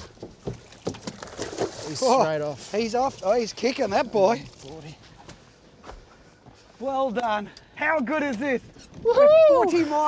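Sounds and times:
sharp knocks on boat: 0:00.0 - 0:01.7
fish splashing into water: 0:00.4 - 0:02.0.

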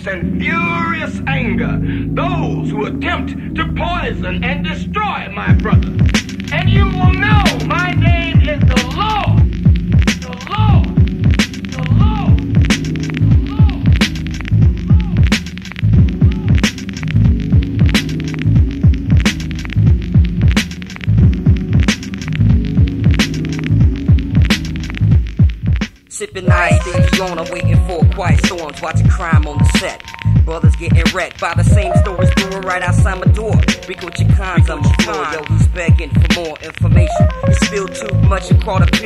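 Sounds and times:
hip hop instrumental beat: 0:00.0 - 0:39.0.

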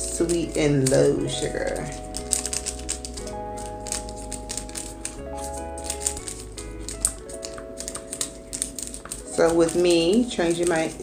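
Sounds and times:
held chords music: 0:00.0 - 0:11.0.

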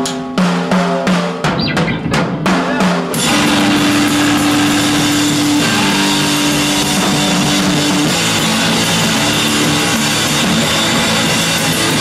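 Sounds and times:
drum kit: 0:00.0 - 0:12.0
electric guitar: 0:02.8 - 0:12.0
held ringing guitar note: 0:03.2 - 0:09.0.

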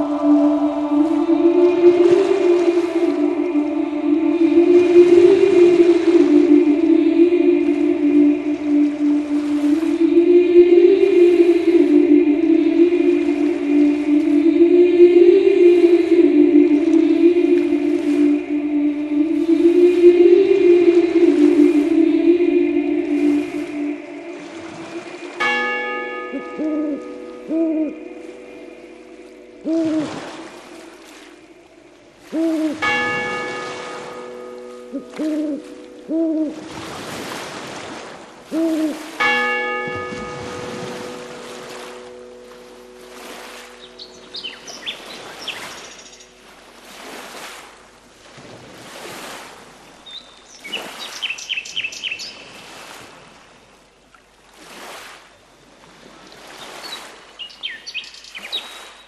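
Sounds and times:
church bell ringing: 0:00.0 - 0:10.0, 0:10.7 - 0:14.5, 0:15.1 - 0:32.1, 0:32.7 - 0:37.2, 0:38.9 - 0:47.0
choir singing a chord: 0:00.0 - 0:37.5, 0:38.5 - 0:47.0
lake waves washing in: 0:00.0 - 0:59.0
owl hooting: 0:26.5 - 0:28.1, 0:29.6 - 0:30.7, 0:32.2 - 0:32.9, 0:34.9 - 0:36.7, 0:38.5 - 0:39.2
small birds chirping: 0:43.8 - 0:46.4.

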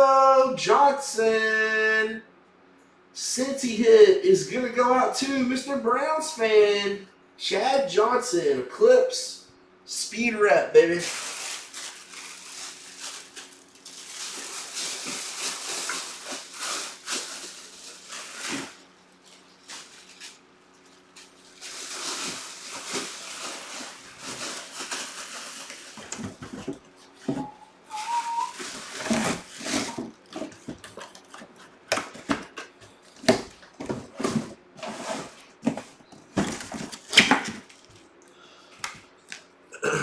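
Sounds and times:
plastic wrapping rustling: 0:11.0 - 0:32.3.

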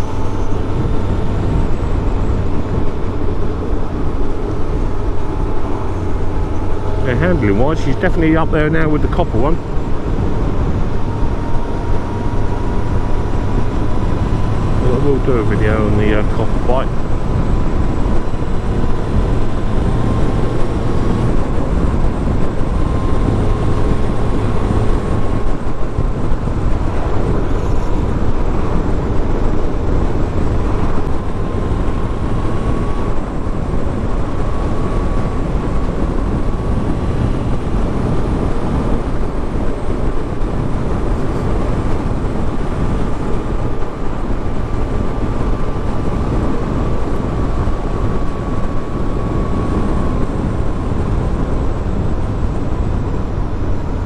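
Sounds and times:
motorcycle engine cruising: 0:00.0 - 0:54.0
thin steady whine: 0:00.0 - 0:54.0
wind rush on microphone: 0:00.0 - 0:54.0.

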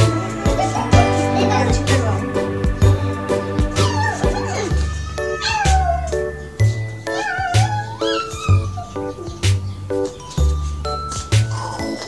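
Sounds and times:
music with steady beat: 0:00.0 - 0:05.1
cat meowing: 0:03.8 - 0:06.4, 0:07.1 - 0:09.3.

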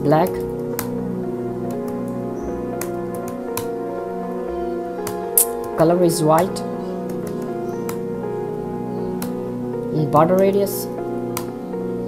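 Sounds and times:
calm music of held notes: 0:00.0 - 0:12.0.

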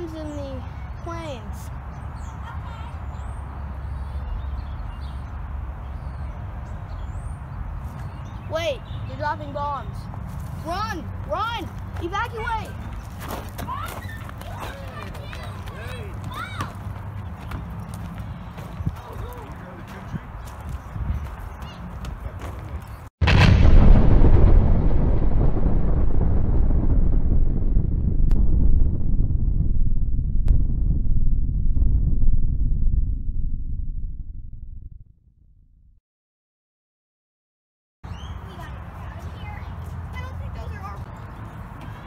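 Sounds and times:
explosion blast: 0:23.2 - 0:35.5
long low rumble: 0:23.2 - 0:36.0.

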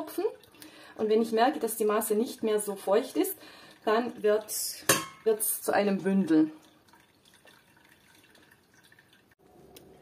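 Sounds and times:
faint dripping into a pot: 0:00.1 - 0:01.0, 0:02.2 - 0:10.0.

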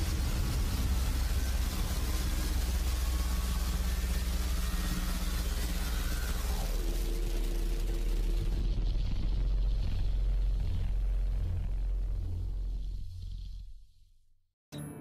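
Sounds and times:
loud noise blast: 0:00.0 - 0:13.8
deep rumble: 0:00.0 - 0:14.3.

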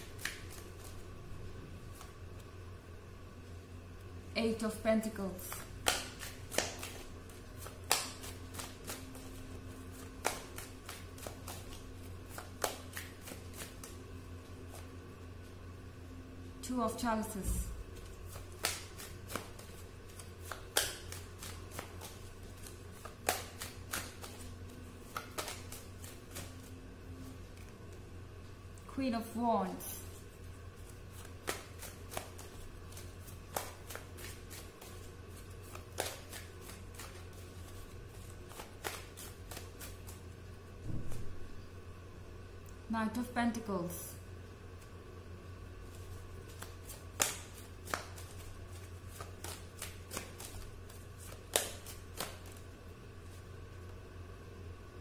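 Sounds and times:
cards being shuffled: 0:00.0 - 0:02.6, 0:05.0 - 0:15.6, 0:17.4 - 0:28.0, 0:29.8 - 0:41.7, 0:45.8 - 0:54.0
low steady hum: 0:00.0 - 0:55.0.

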